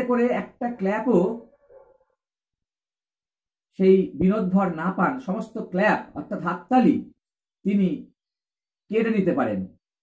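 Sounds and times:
man speaking: 0:00.0 - 0:01.5, 0:03.8 - 0:08.1.

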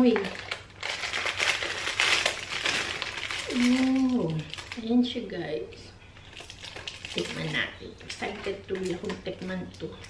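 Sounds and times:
plastic wrapper crinkling: 0:00.0 - 0:05.2, 0:06.2 - 0:10.0.

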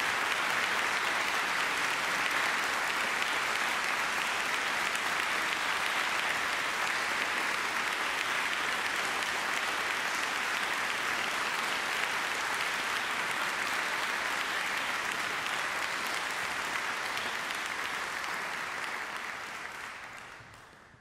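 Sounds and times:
large audience applauding: 0:00.0 - 0:21.0.

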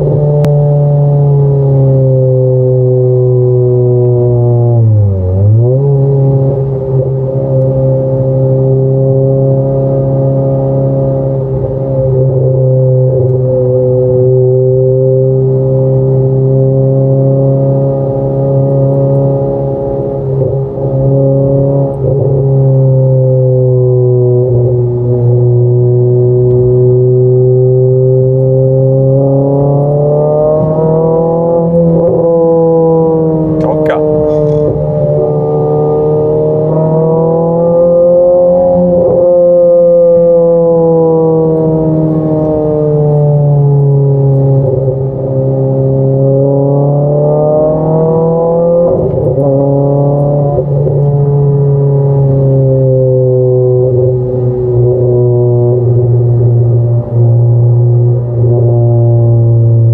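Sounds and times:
car engine droning from cabin: 0:00.0 - 0:59.9.

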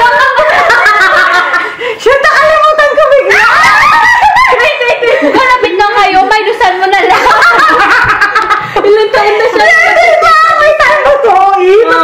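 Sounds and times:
young women laughing and giggling: 0:00.0 - 0:05.9, 0:06.8 - 0:12.0
excited chatter: 0:00.0 - 0:12.0.

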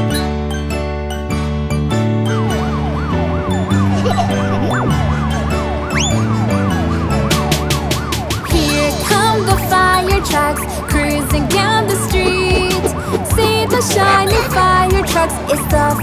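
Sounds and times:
cartoon siren wail: 0:02.4 - 0:16.0
upbeat children's song backing: 0:08.4 - 0:16.0.

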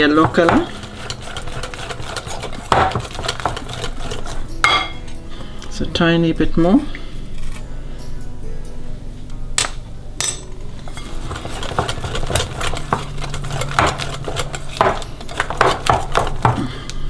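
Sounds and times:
whisk clinking against glass bowl: 0:00.0 - 0:04.9, 0:10.9 - 0:16.4.

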